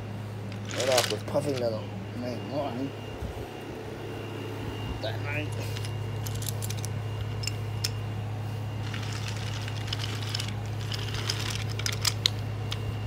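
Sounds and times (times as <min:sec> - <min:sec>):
steady low hum: 0:00.0 - 0:13.0
toy trains rattling on wooden track: 0:00.6 - 0:01.7, 0:08.8 - 0:12.3.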